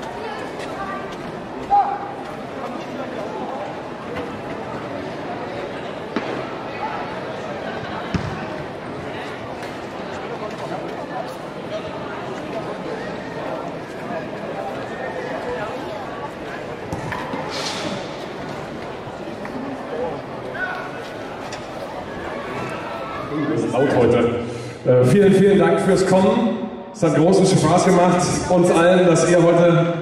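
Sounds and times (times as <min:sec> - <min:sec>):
crowd chatter: 0:00.0 - 0:30.0
steady outdoor noise: 0:00.0 - 0:30.0.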